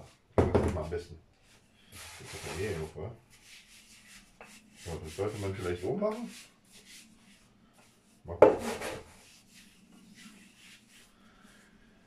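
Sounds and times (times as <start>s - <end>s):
hands rubbing rolling pin: 0.8s - 11.8s.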